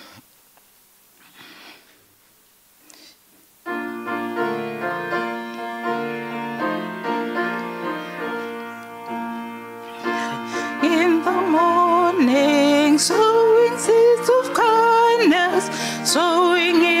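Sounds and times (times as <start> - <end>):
piano playing sustained chords: 3.7 - 17.0.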